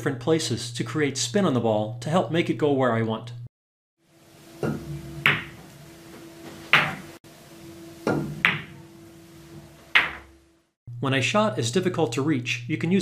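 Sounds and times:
cue tip striking ball: 4.6 - 5.7, 6.7 - 7.1, 8.0 - 8.8, 9.8 - 10.4
pool balls clicking: 4.6 - 7.2, 8.0 - 8.8, 9.4 - 10.4.

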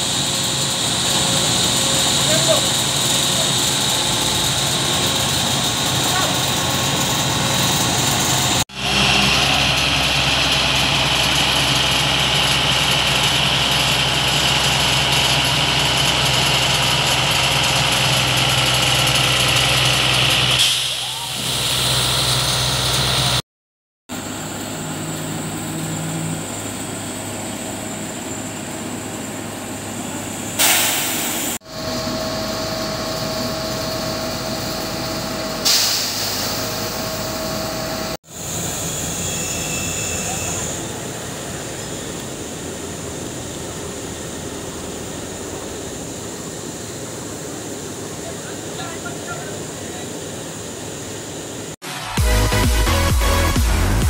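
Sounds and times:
diesel engine running: 0.0 - 23.4, 24.1 - 54.0
air hiss bursts: 30.6 - 31.6, 35.6 - 37.0.

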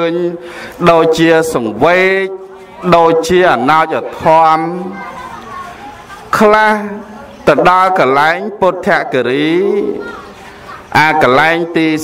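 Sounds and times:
man preaching: 0.0 - 5.0, 6.4 - 10.1, 10.9 - 12.0.

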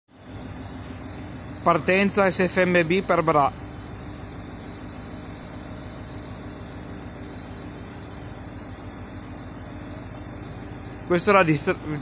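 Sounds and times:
faint hum: 0.1 - 12.0
train diesel engines droning: 0.1 - 12.0.

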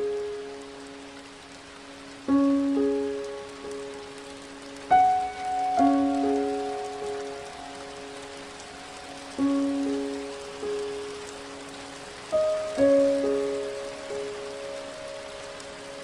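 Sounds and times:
slow piano melody: 0.0 - 16.0
steady rain falling: 0.0 - 16.0.

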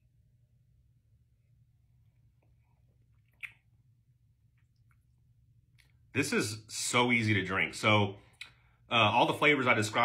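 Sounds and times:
wet mouth clicks: 2.2 - 3.9.

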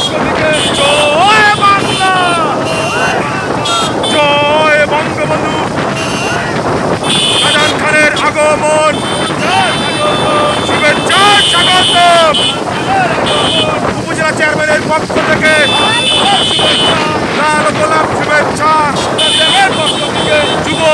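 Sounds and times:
men shouting: 0.0 - 20.9
motorcycle engines running: 0.0 - 20.9
wind on microphone: 0.0 - 20.9.

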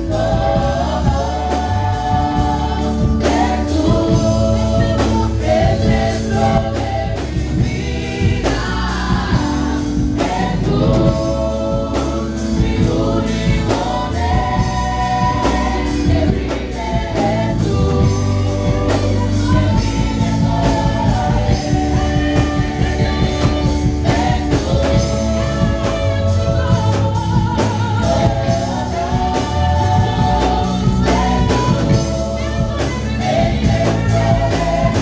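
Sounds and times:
instrumental accompaniment: 0.0 - 35.0
women's choir singing: 0.0 - 35.0.

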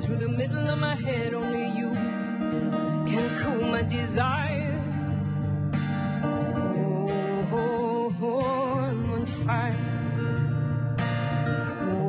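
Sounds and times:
woman singing: 0.0 - 10.7, 11.4 - 12.0
acoustic guitar: 0.0 - 12.0.

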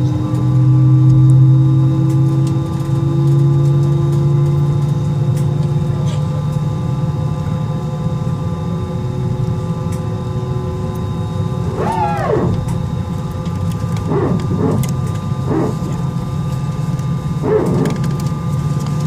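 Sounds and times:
airplane cabin drone: 0.0 - 19.0
faint engine whine: 0.0 - 19.0
voice-like calls: 11.7 - 12.6.

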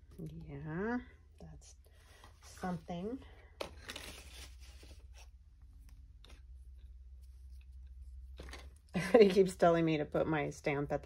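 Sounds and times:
paper crinkling and tearing: 3.7 - 5.3.

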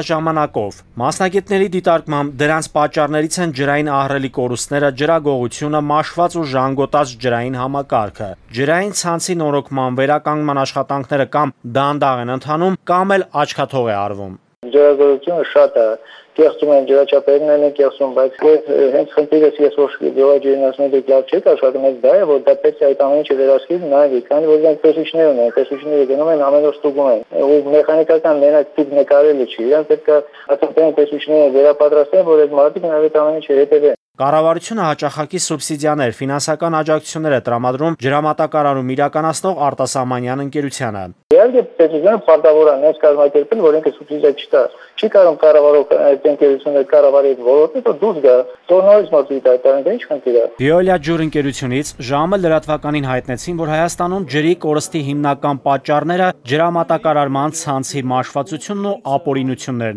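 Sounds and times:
man speaking over telephone: 0.0 - 59.9
clear voice talking: 50.6 - 55.0.

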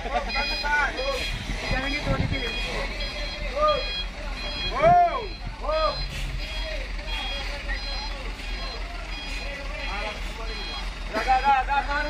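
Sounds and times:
diesel engine rumble: 0.0 - 12.0
truck reversing alarm beeping: 0.0 - 12.0
people shouting: 4.5 - 6.1.

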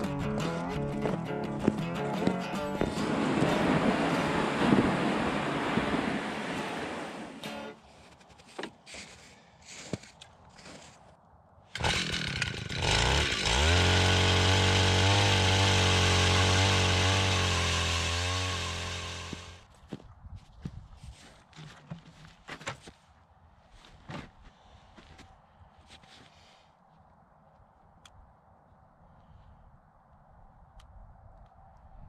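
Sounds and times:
ice auger engine drilling: 11.8 - 19.6.

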